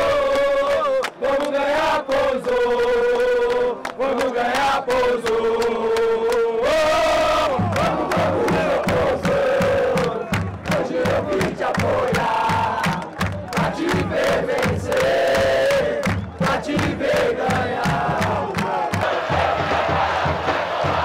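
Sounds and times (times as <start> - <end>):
football crowd chanting: 0.0 - 21.0
steady drumbeat: 7.0 - 21.0.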